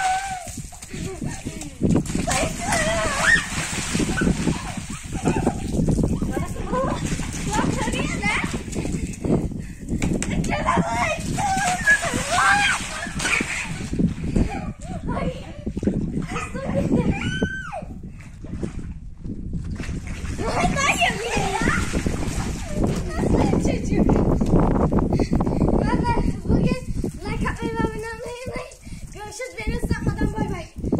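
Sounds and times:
children shouting and squealing: 0.0s - 8.8s, 10.4s - 18.1s, 20.4s - 24.0s
hose water splashing on concrete: 0.0s - 14.1s, 19.9s - 23.7s.

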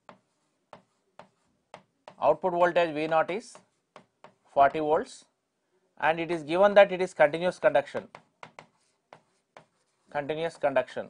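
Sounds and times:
stylus tapping and scraping screen: 0.0s - 5.0s, 6.6s - 11.0s.

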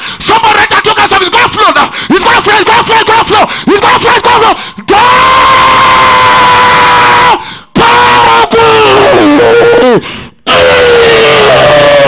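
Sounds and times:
man shouting into microphone: 0.2s - 12.0s.

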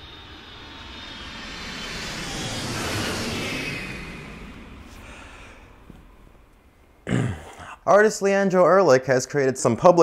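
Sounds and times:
jet airliner flyby: 0.0s - 7.0s.

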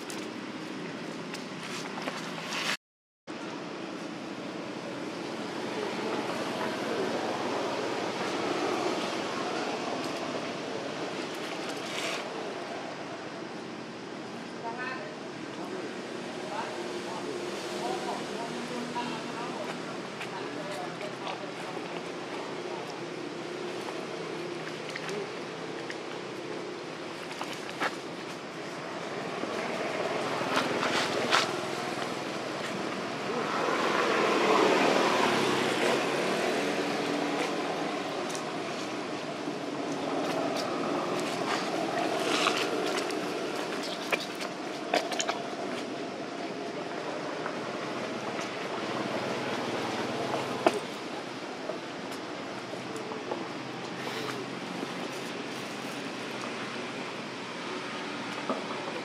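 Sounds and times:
outdoor background noise: 0.0s - 59.0s.

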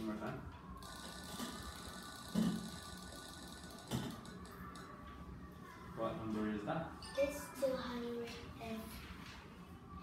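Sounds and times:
electronic spinning wheel sound: 0.8s - 4.9s.

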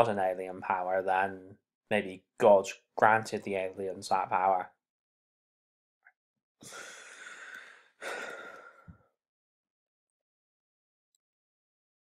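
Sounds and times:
man sighing: 6.6s - 9.0s.

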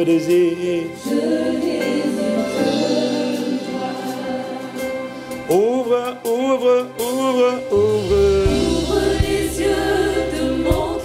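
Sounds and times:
slow gospel worship music: 0.0s - 11.0s
backing singers singing: 0.8s - 6.3s, 7.9s - 11.0s.

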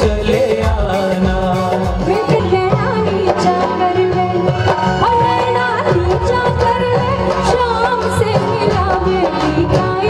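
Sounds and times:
keyboard: 0.0s - 10.0s
percussion: 0.0s - 10.0s
woman singing into microphone: 1.8s - 10.0s.

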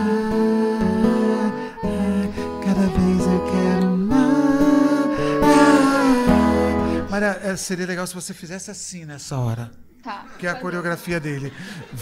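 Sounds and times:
acoustic guitar bossa nova: 0.0s - 7.2s
person singing without words: 0.0s - 7.2s.

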